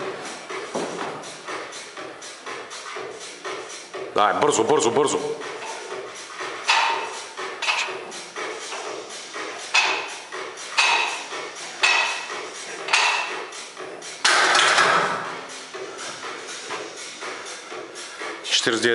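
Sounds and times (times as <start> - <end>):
barbell plates clanking: 5.4 - 13.6, 14.2 - 15.3.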